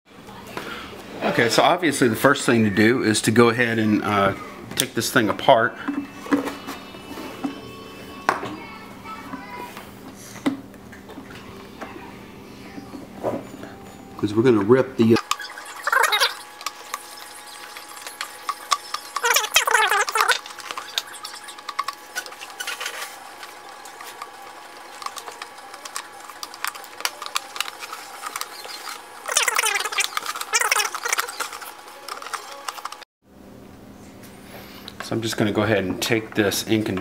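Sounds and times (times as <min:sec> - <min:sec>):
person speaking: 0:19.1 - 0:21.5.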